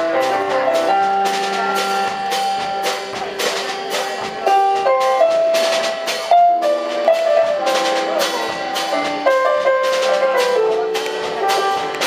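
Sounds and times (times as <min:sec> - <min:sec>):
drum and cymbal strokes: 0:00.0 - 0:12.0
keyboard melody: 0:00.0 - 0:12.0
upright bass: 0:00.0 - 0:12.0.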